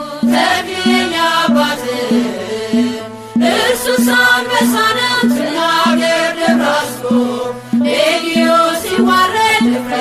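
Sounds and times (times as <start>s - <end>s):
person singing a hymn: 0.0s - 10.0s
steady low beat: 0.0s - 10.0s.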